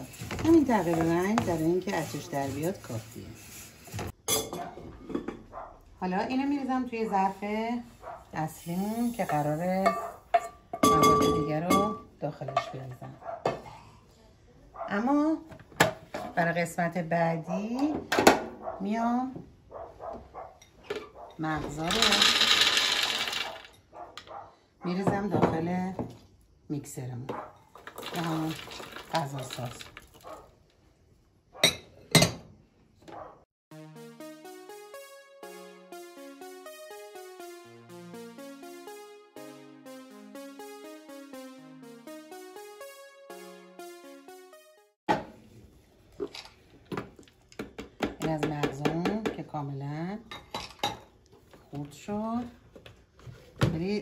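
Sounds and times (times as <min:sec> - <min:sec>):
nuts pouring into bowl: 0:21.8 - 0:23.7, 0:27.8 - 0:30.2.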